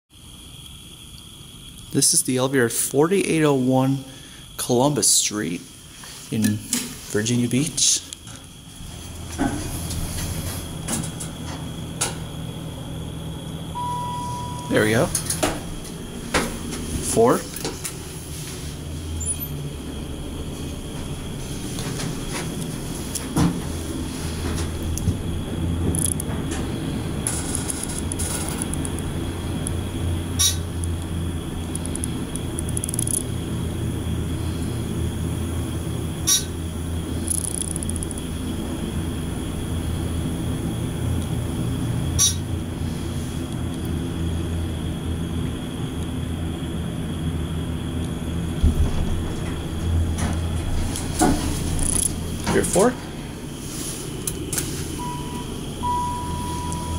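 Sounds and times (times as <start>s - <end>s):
elevator hum: 0.3s - 56.9s.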